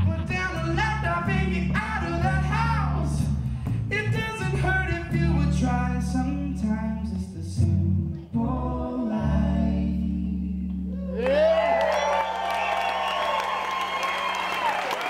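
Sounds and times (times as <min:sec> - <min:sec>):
man singing: 0:00.0 - 0:10.7
electric bass: 0:00.0 - 0:11.8
audience applause and cheering: 0:10.9 - 0:15.0.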